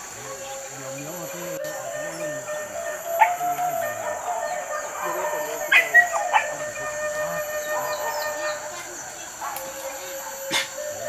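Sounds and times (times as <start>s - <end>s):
dogs yelping: 2.1s - 11.0s.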